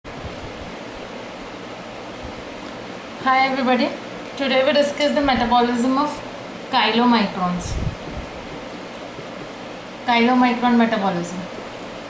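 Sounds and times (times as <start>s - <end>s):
steady background hiss: 0.1s - 12.0s.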